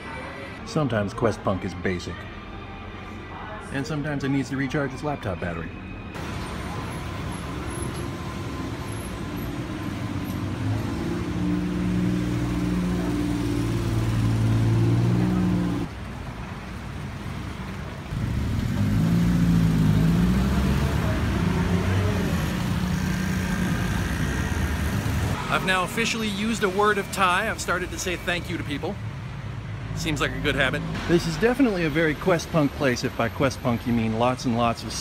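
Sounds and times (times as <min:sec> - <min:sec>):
street traffic: 0:00.0 - 0:35.0
bus engine running: 0:06.2 - 0:15.9.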